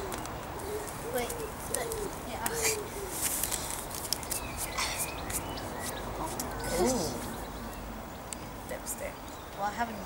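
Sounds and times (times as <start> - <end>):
birds chirping: 0.0 - 10.0
steady outdoor hiss: 0.0 - 10.0.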